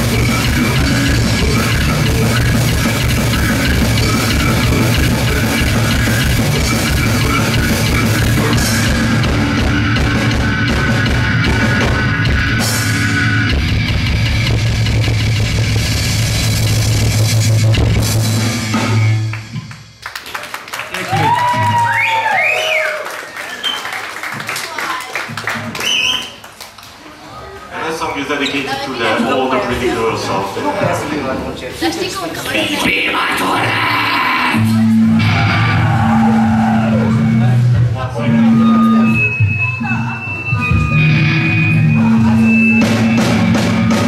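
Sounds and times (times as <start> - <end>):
fast dense drumming: 0.0 - 19.3, 42.0 - 44.0
distorted guitar and bass droning: 0.0 - 19.5, 33.4 - 44.0
metal band playing: 0.0 - 20.0, 32.7 - 44.0.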